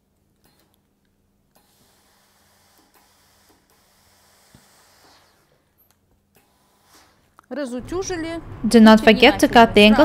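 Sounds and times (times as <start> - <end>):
steam iron hissing: 1.6 - 5.7.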